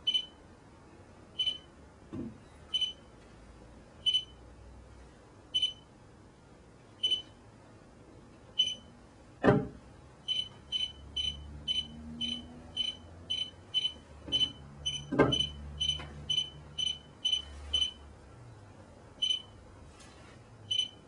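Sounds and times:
high electronic beeps: 10.3s - 18.0s.

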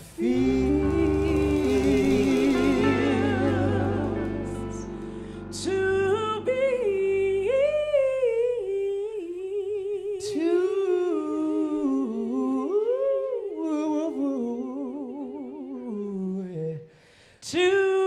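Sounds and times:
band playing: 0.0s - 8.0s
two voices singing in harmony: 0.0s - 18.0s.

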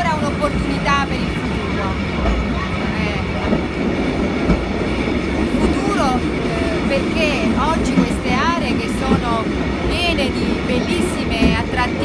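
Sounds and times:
woman talking: 0.0s - 2.0s, 2.8s - 3.6s, 5.5s - 12.0s
train rumbling on rails: 0.0s - 12.0s.

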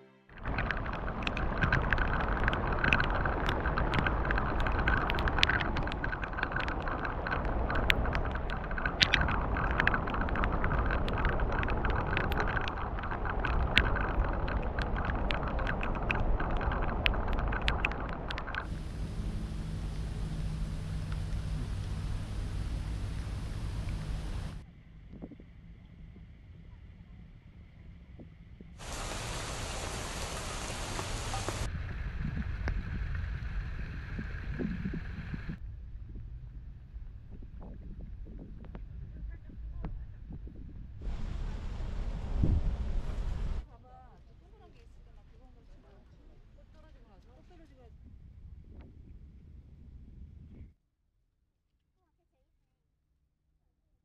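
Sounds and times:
low rumble: 0.3s - 50.7s
drops tapping: 0.4s - 24.6s, 28.8s - 31.7s
fountain jets splashing: 0.4s - 24.6s, 28.8s - 35.6s, 41.0s - 43.7s
rain hissing on water: 0.4s - 24.7s, 28.7s - 35.6s, 41.0s - 43.7s.

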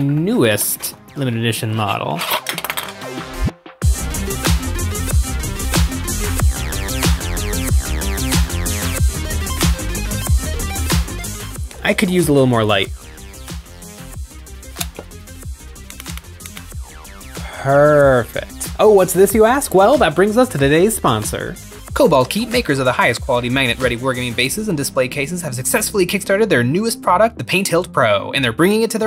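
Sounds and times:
electronic music with beat: 2.4s - 26.8s
person speaking: 11.7s - 12.9s, 17.4s - 26.5s.

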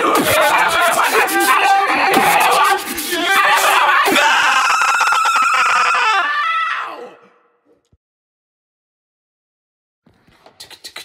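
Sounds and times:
long scream sliding down: 3.4s - 7.2s.

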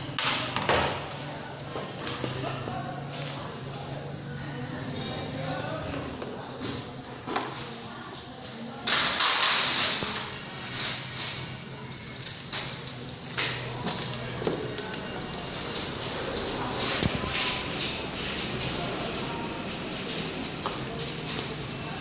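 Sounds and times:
voices: 0.0s - 22.0s.

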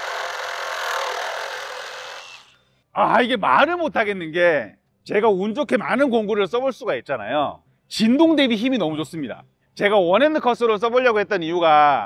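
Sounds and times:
reciprocating saw cutting metal pipe: 0.0s - 2.6s.

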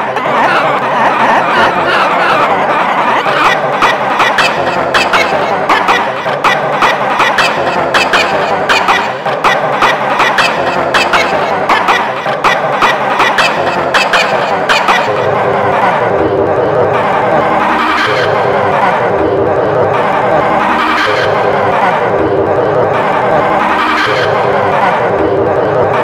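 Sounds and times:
jumble of high cartoon voices: 0.0s - 26.0s.

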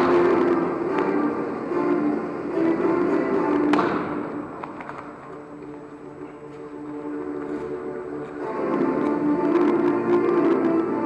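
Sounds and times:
background music with sustained tones: 0.0s - 11.0s.

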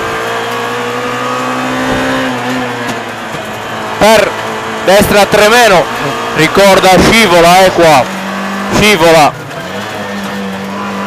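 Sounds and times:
rally car engine: 0.0s - 11.0s.

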